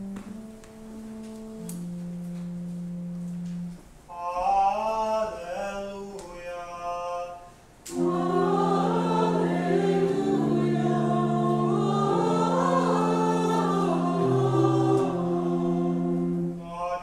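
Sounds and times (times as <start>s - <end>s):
church choir chanting: 7.9s - 17.0s.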